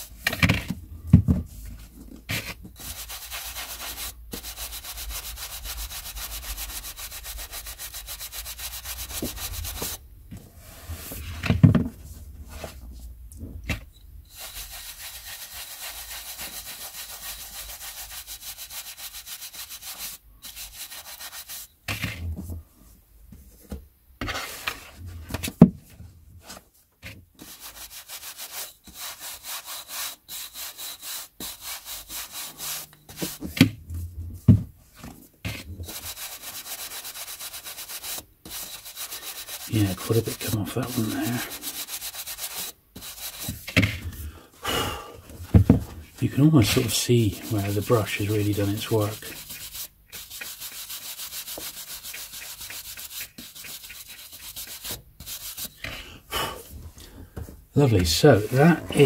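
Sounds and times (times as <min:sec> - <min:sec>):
brush scrubbing book edges: 0:01.5 - 0:10.0, 0:14.3 - 0:22.4, 0:27.4 - 0:33.7, 0:35.5 - 0:44.2, 0:45.5 - 0:55.9, 0:57.8 - 0:59.0.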